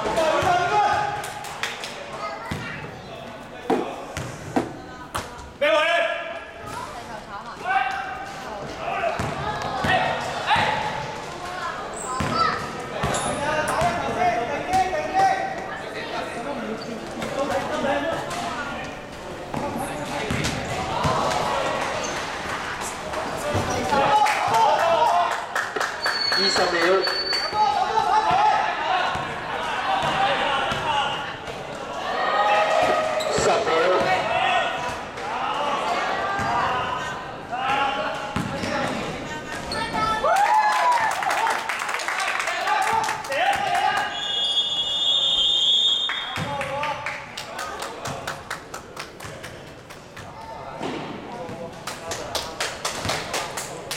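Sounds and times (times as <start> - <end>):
basketball bouncing on court: 2.4 - 3.0, 4.1 - 5.3, 9.2 - 10.9, 12.2 - 14.0, 19.5 - 21.3, 30.0 - 30.9, 38.3 - 40.0.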